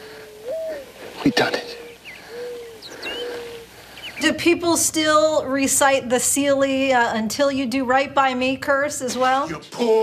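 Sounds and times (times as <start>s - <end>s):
dove cooing: 0.0s - 4.3s
faint bird chirps: 0.1s - 4.4s.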